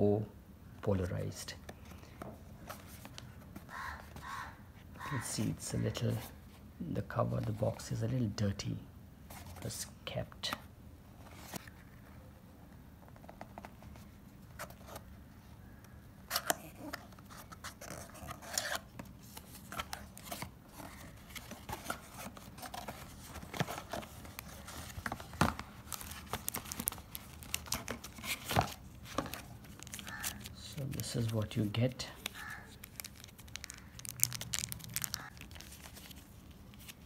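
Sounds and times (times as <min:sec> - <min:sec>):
cardboard and plastic tearing: 0:16.3 - 0:31.3, 0:32.3 - 0:37.0
plastic tape peeled off box: 0:32.3 - 0:36.2.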